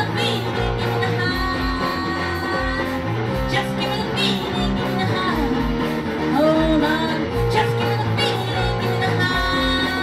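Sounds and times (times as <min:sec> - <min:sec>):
electric bass: 0:00.0 - 0:10.0
electric guitar: 0:00.0 - 0:10.0
steady drum beat: 0:00.0 - 0:10.0
woman singing into microphone: 0:00.0 - 0:10.0.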